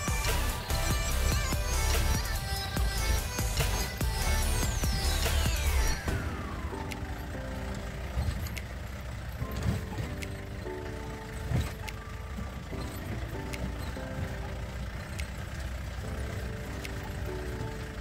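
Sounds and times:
calm background music: 0.0 - 18.0
jeep engine rumble: 0.0 - 18.0.

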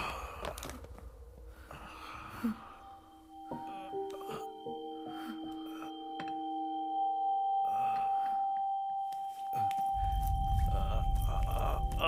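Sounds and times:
high drone tone: 2.5 - 12.0
deep low rumble: 10.0 - 12.0.

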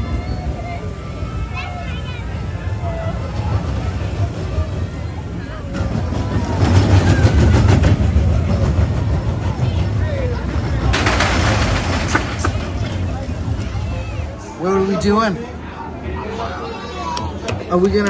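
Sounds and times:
roller coaster cars rattling: 0.0 - 18.0
roller coaster rumbling on track: 0.0 - 18.0.

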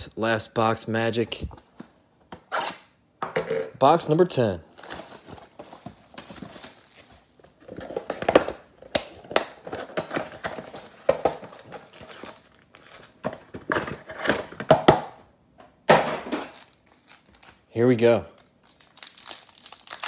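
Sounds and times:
cardboard rustling: 4.7 - 8.4
plastic wrap crinkling and tearing: 4.7 - 8.5, 9.4 - 13.2, 16.5 - 17.7, 18.4 - 20.0.

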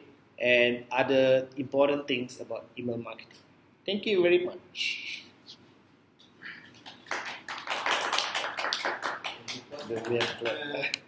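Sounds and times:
small group clapping: 6.7 - 11.0.

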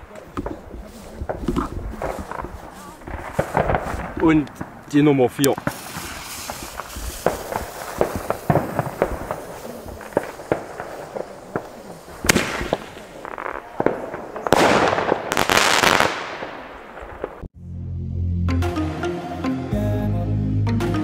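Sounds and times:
firework mortar launch bang: 0.0 - 4.8, 5.4 - 17.5
fuse sputtering and crackling: 0.0 - 16.1
firework shell bursting overhead: 3.0 - 17.5.

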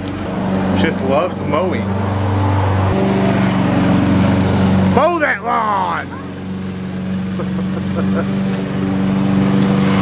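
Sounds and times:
lawn mower running: 0.0 - 10.0.

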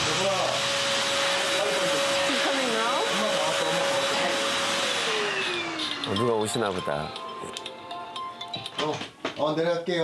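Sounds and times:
stick vacuum cleaner running: 0.0 - 7.1.

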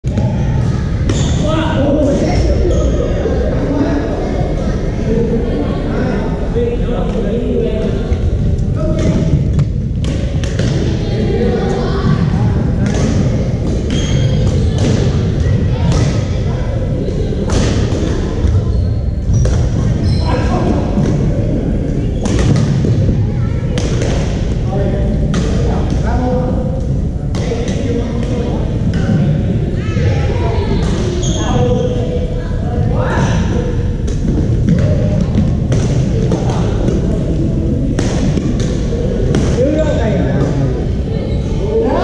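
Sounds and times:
babble of voices echoing: 0.0 - 42.0.

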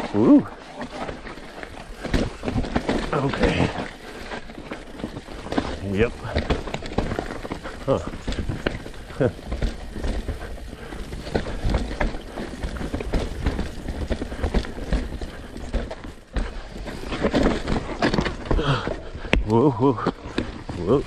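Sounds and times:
bike tyres rumbling on dirt: 0.0 - 21.0.

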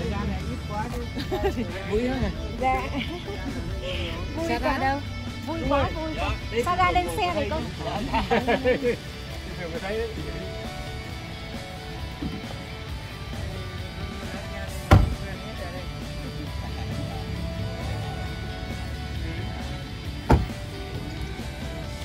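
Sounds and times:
background music with guitar: 0.0 - 22.0
car door shutting: 12.1 - 12.6, 14.8 - 15.3, 20.2 - 20.8.

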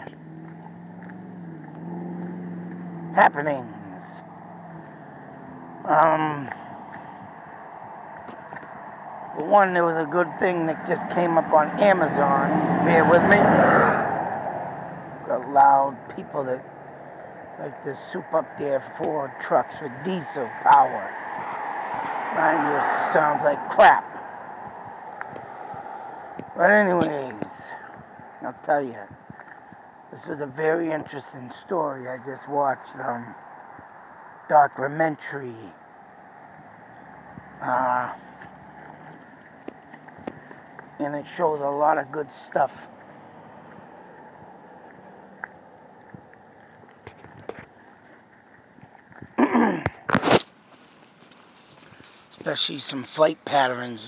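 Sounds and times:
vehicle engine running: 0.0 - 49.3.

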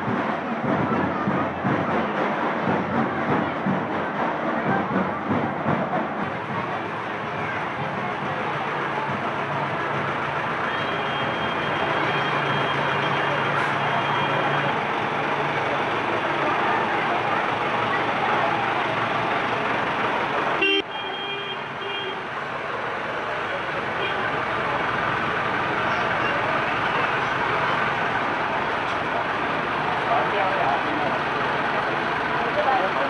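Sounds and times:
crowd chatter: 0.0 - 33.0
vehicle engine running: 0.0 - 33.0.

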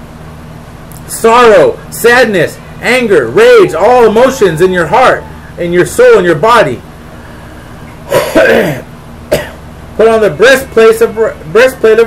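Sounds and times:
man clearing his throat: 8.1 - 9.6.

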